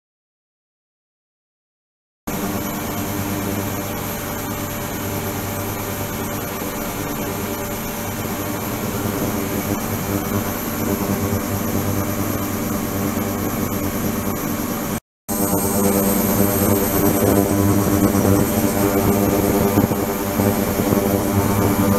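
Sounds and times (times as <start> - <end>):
ultrasonic cleaner buzzing hiss: 2.3 - 14.6, 15.3 - 21.9.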